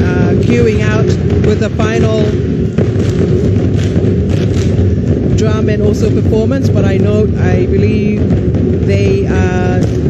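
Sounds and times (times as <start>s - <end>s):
drums beating heavy thuds: 0.0s - 10.0s
low rumble: 0.0s - 10.0s.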